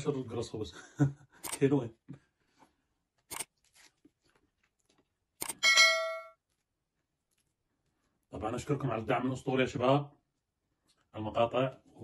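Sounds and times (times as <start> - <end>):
bright bell ding: 5.6 - 6.4.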